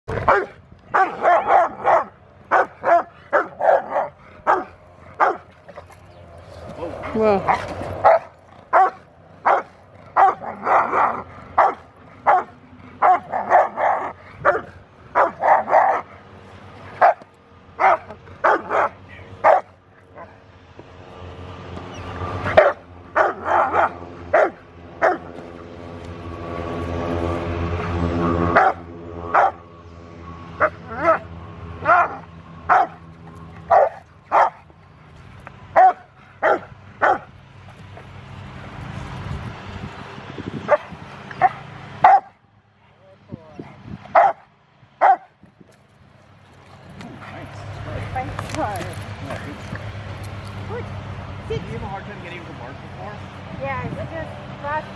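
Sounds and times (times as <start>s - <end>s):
steady low drone: 0.1s - 44.0s
dog barking: 0.3s - 5.4s, 8.0s - 16.1s, 17.8s - 19.7s, 22.6s - 25.3s, 31.8s - 33.0s, 33.7s - 34.6s, 35.8s - 37.3s, 40.7s - 42.3s, 44.2s - 44.4s, 45.0s - 45.3s.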